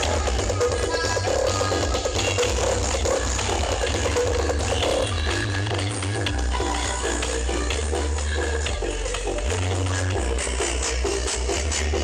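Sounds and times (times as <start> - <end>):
loud electronic dance music: 0.0 - 12.0.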